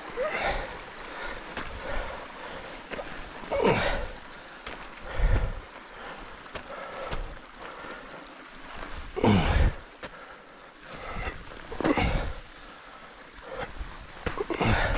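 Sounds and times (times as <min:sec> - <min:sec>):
groan of effort: 0:00.0 - 0:02.1, 0:03.4 - 0:04.3, 0:09.0 - 0:09.9, 0:10.9 - 0:12.5, 0:13.5 - 0:14.9
heavy effortful breathing: 0:00.0 - 0:14.9
footsteps crunching loose shale: 0:06.5 - 0:08.0.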